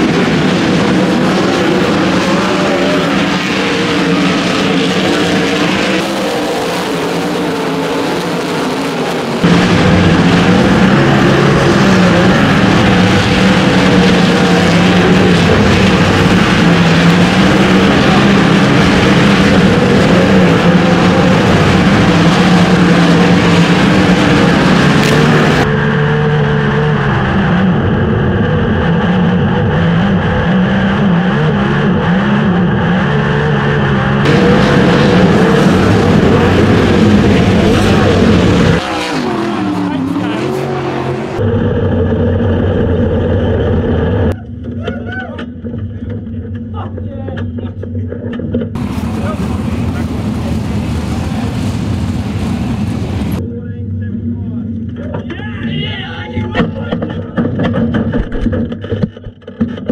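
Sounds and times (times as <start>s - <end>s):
race car engine running hard: 0.0s - 55.4s
wind and dirt noise: 34.0s - 53.8s, 56.4s - 59.9s.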